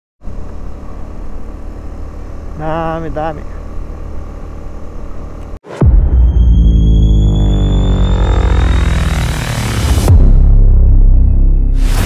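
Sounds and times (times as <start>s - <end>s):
motorcycle engine running: 0.2s - 5.6s
wind and road noise: 0.2s - 5.7s.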